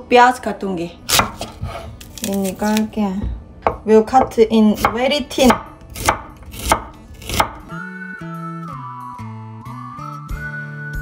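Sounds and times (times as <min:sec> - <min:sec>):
knife chopping onion on wooden board: 0:01.1 - 0:02.8, 0:03.6 - 0:07.7
background music with plucked notes: 0:04.8 - 0:11.0.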